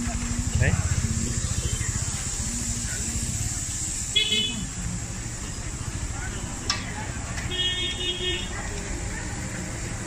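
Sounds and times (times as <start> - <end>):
motorcycle engine running: 0.0 - 6.1.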